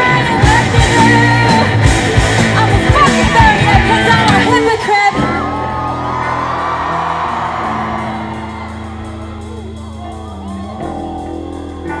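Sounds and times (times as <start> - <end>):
live rock band playing: 0.0 - 12.0
audience whooping and yelling: 5.1 - 12.0.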